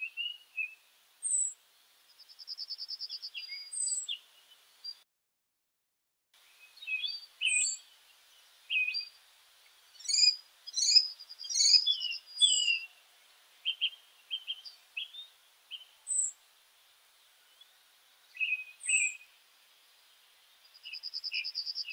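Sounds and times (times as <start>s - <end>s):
birds chirping and calling: 2.4s - 5.0s, 6.6s - 9.2s, 9.9s - 13.0s, 13.6s - 16.4s, 17.5s - 19.3s, 20.6s - 21.9s.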